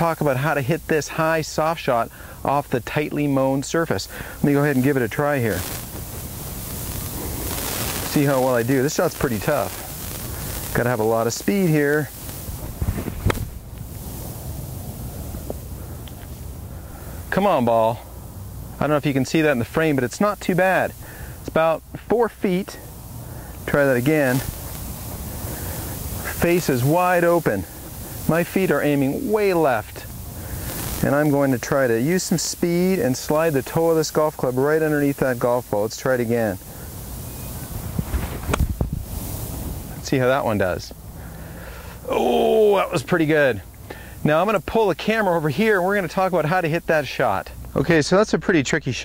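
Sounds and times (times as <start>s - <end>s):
wind rumble on microphone: 37.7s - 39.8s.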